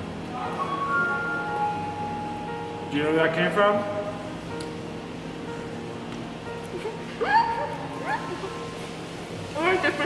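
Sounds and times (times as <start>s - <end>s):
woman squealing giggles: 6.7s - 8.8s.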